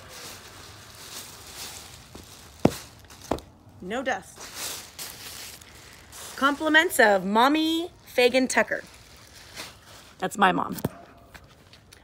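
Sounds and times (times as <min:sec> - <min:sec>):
plastic bag rustling: 0:00.0 - 0:10.3.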